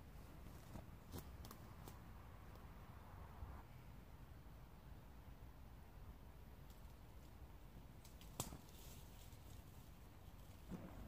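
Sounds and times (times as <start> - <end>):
faint crackles: 6.6 - 11.0.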